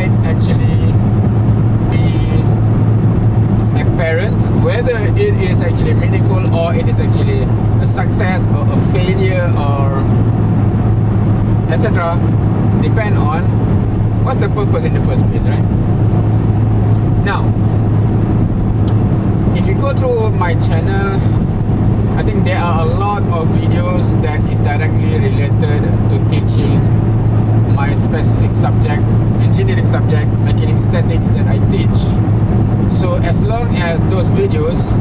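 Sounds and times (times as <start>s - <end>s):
car engine and road noise: 0.0s - 35.0s.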